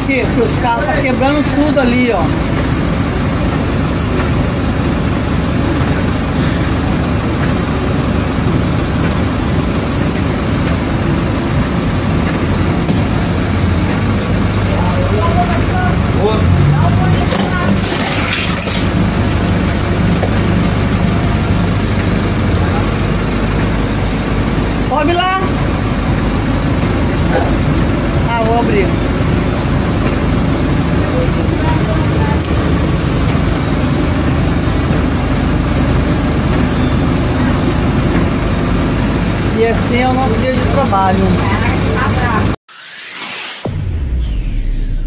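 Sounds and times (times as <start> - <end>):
bus engine idling: 0.0 - 42.6.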